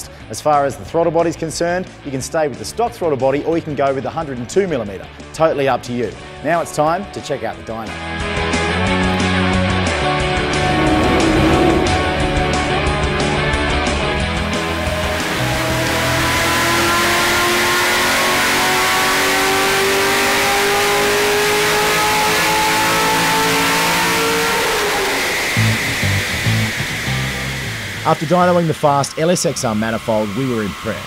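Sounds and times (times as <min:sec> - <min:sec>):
car engine full-throttle pull: 0:14.4 - 0:31.0.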